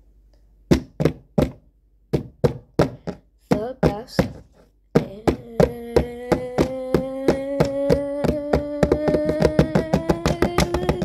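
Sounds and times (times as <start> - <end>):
hand knocking on hard surface: 0.7 - 11.0.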